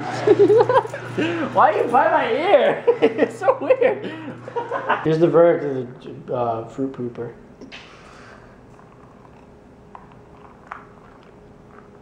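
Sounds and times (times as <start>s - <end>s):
faint steady hum: 0.0s - 12.0s
person drinking from a glass: 8.3s - 12.0s.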